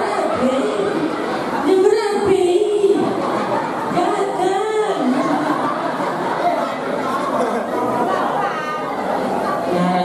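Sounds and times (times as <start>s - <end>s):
voices talking in echoing hall: 0.0s - 10.0s.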